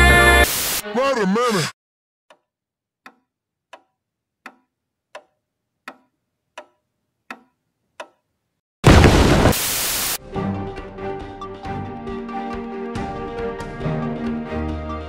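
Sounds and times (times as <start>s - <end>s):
music: 0.0s - 1.0s, 10.2s - 15.0s
wall clock ticking: 3.0s - 8.2s.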